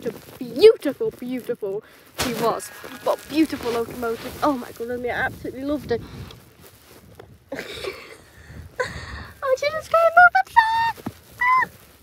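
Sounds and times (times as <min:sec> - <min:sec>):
sheep bleating: 0:02.4 - 0:03.8.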